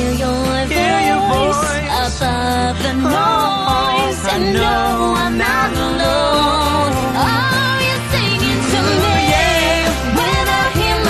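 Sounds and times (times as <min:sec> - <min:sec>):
upbeat pop song with band: 0:00.0 - 0:11.0.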